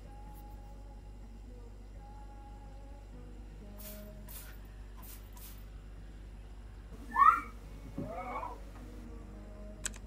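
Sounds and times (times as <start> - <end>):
squeaky pitch-bending sounds: 7.1 - 8.6.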